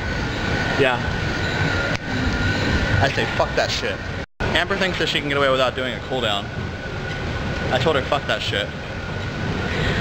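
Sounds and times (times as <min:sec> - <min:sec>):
treadmill belt rumble: 0:00.0 - 0:10.0
treadmill motor whine: 0:00.0 - 0:10.0.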